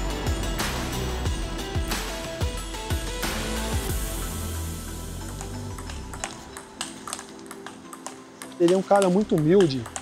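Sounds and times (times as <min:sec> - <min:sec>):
soft background music: 0:00.0 - 0:10.0
table tennis ball clicks: 0:05.3 - 0:10.0.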